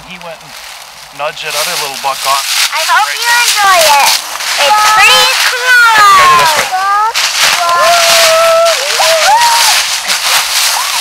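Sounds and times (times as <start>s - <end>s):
man shouting excitedly: 5.7s - 6.7s.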